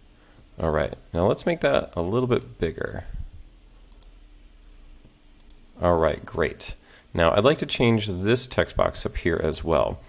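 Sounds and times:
low steady hum: 0.0 - 10.0
computer mouse clicks: 3.9 - 4.2, 5.4 - 5.6.

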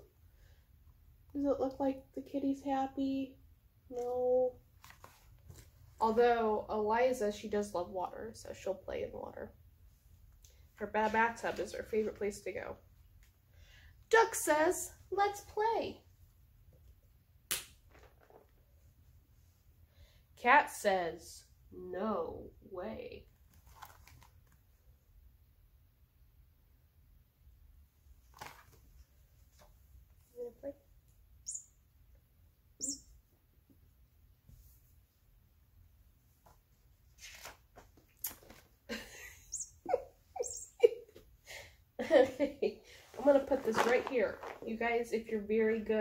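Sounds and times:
faint handling sounds: 4.7 - 6.0, 23.3 - 24.9, 42.9 - 44.8
woman laughing: 38.9 - 42.8.

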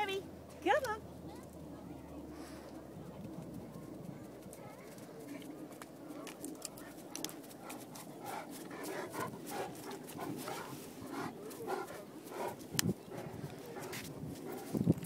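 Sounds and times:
dogs panting: 1.3 - 15.0.

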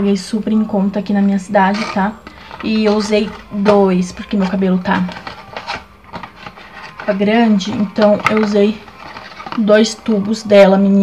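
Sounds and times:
cardboard box rustling: 1.7 - 9.7.

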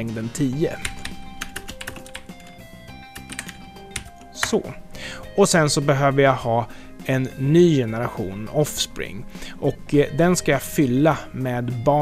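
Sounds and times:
quiet background music: 0.0 - 12.0
keyboard typing clicks: 0.8 - 2.5, 3.2 - 4.6.

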